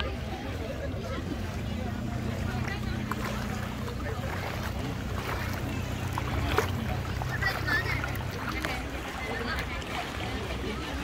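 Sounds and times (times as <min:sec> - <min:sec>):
boat engine humming: 0:00.0 - 0:11.0
people chattering: 0:00.0 - 0:11.0.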